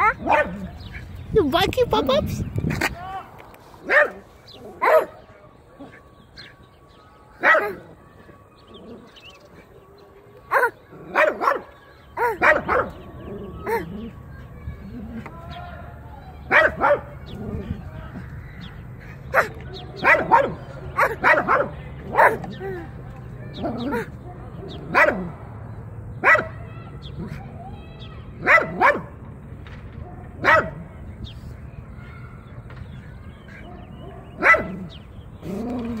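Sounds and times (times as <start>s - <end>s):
dog barking: 0.0s - 0.9s, 3.8s - 5.2s, 7.4s - 7.8s, 10.5s - 13.0s, 16.5s - 17.1s, 19.3s - 22.5s, 23.8s - 25.3s, 26.2s - 26.6s, 28.4s - 29.1s, 30.0s - 30.8s, 33.5s - 34.9s
drawn-out low voice-like sound: 17.1s - 25.7s.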